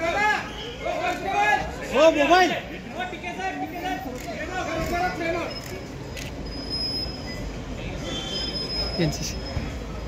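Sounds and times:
street crowd: 0:00.0 - 0:10.0
traffic: 0:00.0 - 0:10.0.

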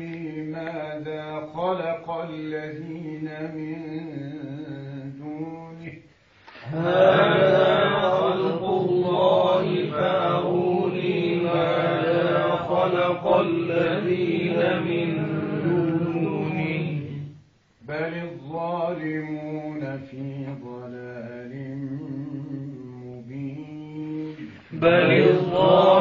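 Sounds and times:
man reciting melodically: 0:00.0 - 0:26.0.

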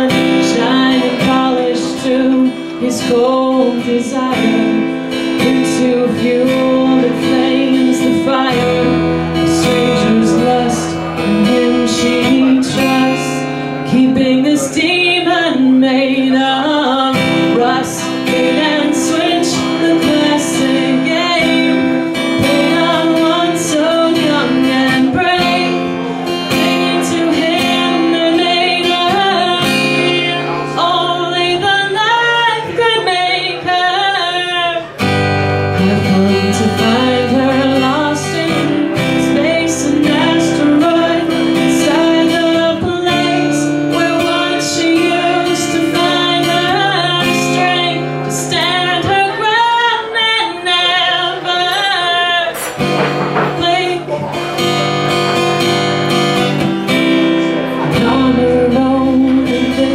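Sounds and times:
acoustic guitar strumming: 0:00.0 - 0:59.9
woman singing: 0:00.0 - 0:59.9.

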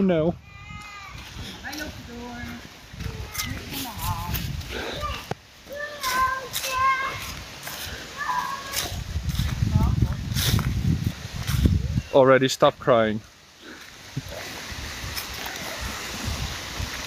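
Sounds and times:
young child crying: 0:00.4 - 0:01.3, 0:04.8 - 0:07.3, 0:08.1 - 0:09.0.

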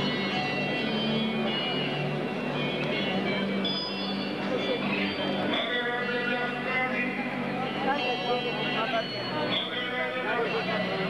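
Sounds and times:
music with long held notes: 0:00.0 - 0:11.0.

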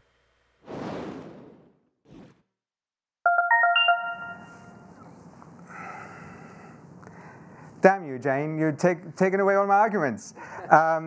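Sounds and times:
electronic chime jingle: 0:03.3 - 0:04.9.

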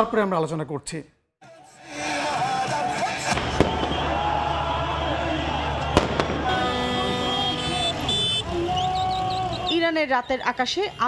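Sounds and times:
crowd noise: 0:01.5 - 0:11.0
firecracker bangs: 0:03.3 - 0:04.4, 0:05.6 - 0:08.4
horn-like tone: 0:06.4 - 0:09.8.

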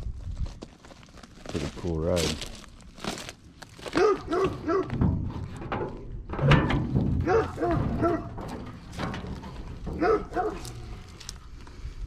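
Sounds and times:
dog barking in short yelps: 0:04.0 - 0:04.9.

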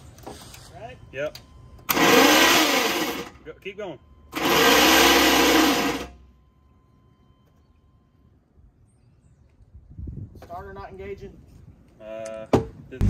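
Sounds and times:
starter motor cranking diesel engine: 0:01.9 - 0:03.3, 0:04.3 - 0:06.2.

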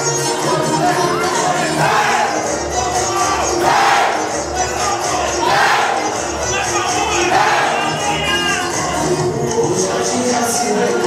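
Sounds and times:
crowd shouting and cheering: 0:00.0 - 0:11.0
dance music with bass beat: 0:00.0 - 0:11.0.

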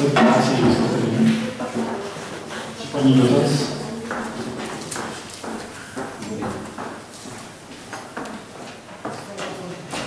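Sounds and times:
faint murmur of voices: 0:00.0 - 0:10.0
footsteps on hard floor: 0:03.9 - 0:10.0.

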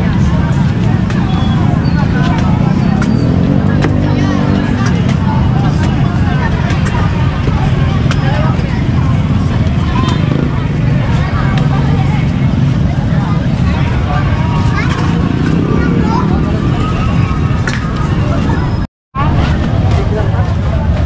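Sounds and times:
crowd chatter: 0:00.0 - 0:21.0
motor traffic rumble: 0:00.0 - 0:21.0.

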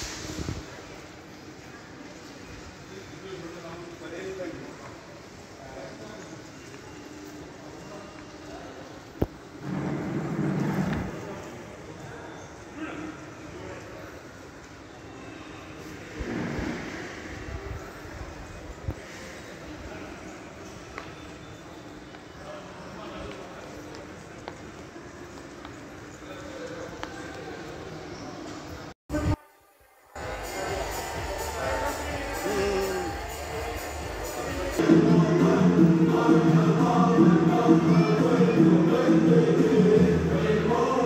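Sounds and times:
faint voices: 0:00.0 - 0:41.0
steady hall hum: 0:00.0 - 0:41.0.

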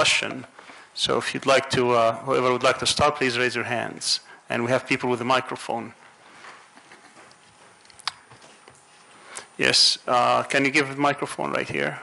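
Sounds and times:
faint taps and rustles: 0:06.0 - 0:09.1.

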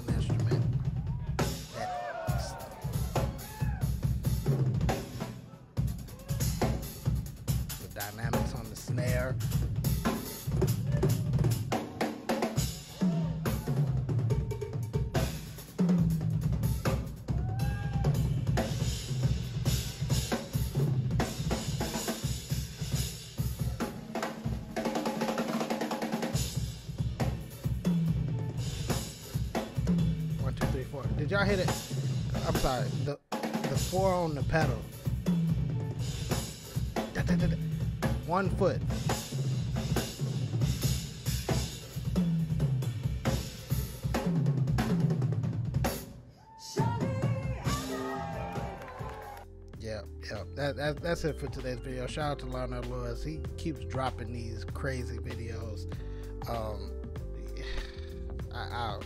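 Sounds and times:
drum kit solo: 0:00.0 - 0:59.0.

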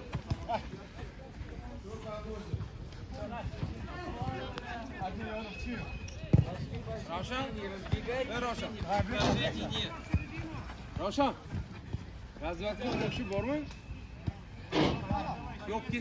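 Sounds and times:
football being kicked: 0:06.3 - 0:07.0.

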